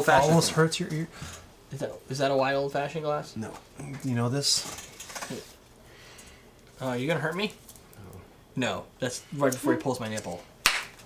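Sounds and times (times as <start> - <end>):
person speaking: 9.2 - 10.4.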